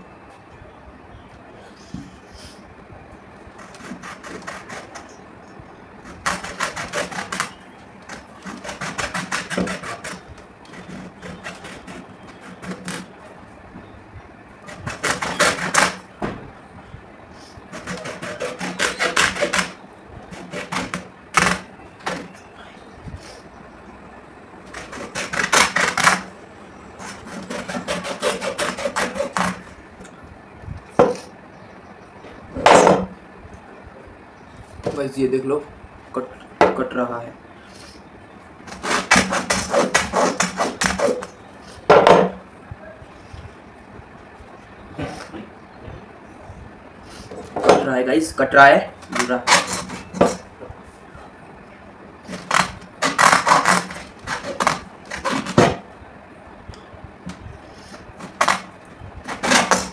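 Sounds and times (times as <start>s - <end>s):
hacksaw cutting leather ball: 3.6s - 5.2s, 6.0s - 13.1s, 14.6s - 16.0s, 17.7s - 22.4s, 24.7s - 26.3s, 27.0s - 29.8s, 38.7s - 41.4s, 49.0s - 50.4s, 52.3s - 55.8s, 57.9s - 59.9s.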